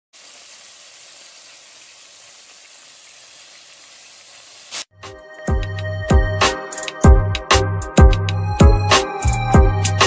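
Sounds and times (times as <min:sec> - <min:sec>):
chicken deep-frying in oil: 0:00.1 - 0:04.9.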